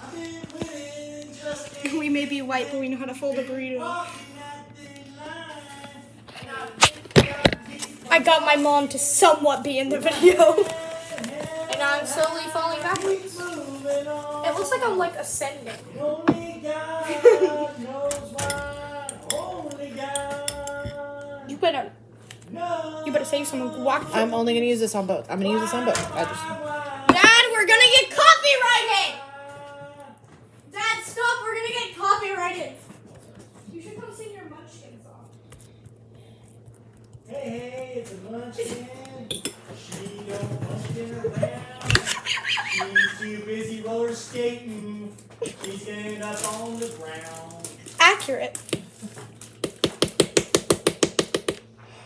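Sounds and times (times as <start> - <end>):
person singing: 0.0 - 2.4, 3.4 - 8.2, 10.1 - 15.0, 15.8 - 21.6, 22.4 - 24.4, 25.5 - 27.5, 28.8 - 30.2.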